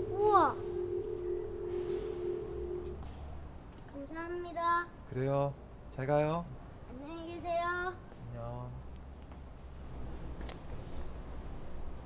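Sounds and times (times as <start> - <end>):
boy's sing-song call: 0.0 - 1.0.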